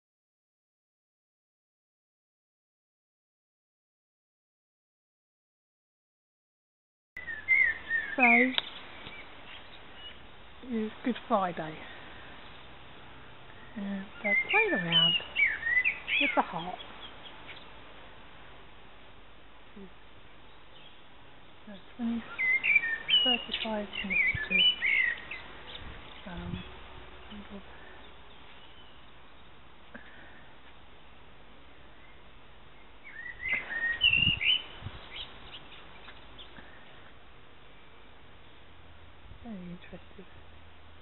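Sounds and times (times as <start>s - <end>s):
bird whistling: 7.2s - 9.2s, 13.6s - 16.4s, 22.3s - 25.4s, 33.0s - 35.3s
songbird chirping and warbling: 7.2s - 17.8s, 19.7s - 37.0s.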